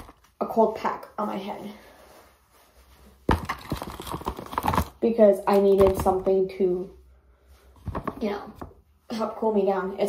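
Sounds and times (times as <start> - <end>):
objects knocking and clicking: 3.3 - 6.2, 7.8 - 8.8.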